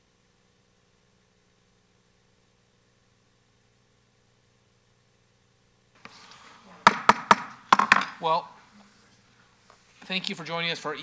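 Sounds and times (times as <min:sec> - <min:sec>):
low room hum: 0:00.0 - 0:11.0
taps and knocks on a desk: 0:06.9 - 0:08.2.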